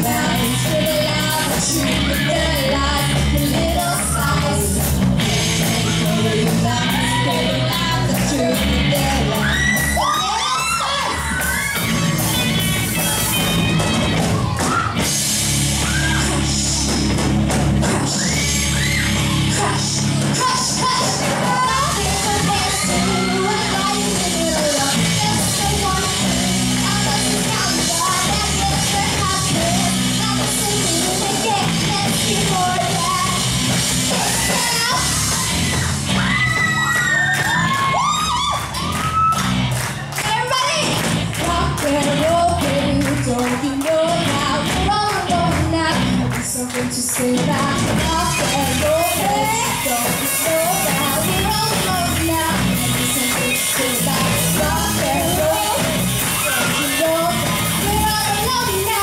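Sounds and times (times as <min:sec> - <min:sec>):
rock band playing live: 0:00.0 - 0:59.0
crowd shouting and screaming: 0:01.2 - 0:43.8, 0:47.5 - 0:59.0
audience cheering: 0:09.2 - 0:17.2, 0:17.8 - 0:24.9, 0:33.4 - 0:40.9, 0:48.8 - 0:58.1.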